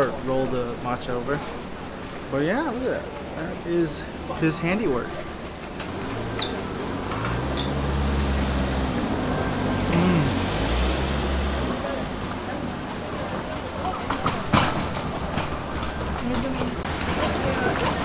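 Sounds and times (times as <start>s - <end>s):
street background noise: 0.0s - 18.0s
man humming while chewing: 9.8s - 10.5s.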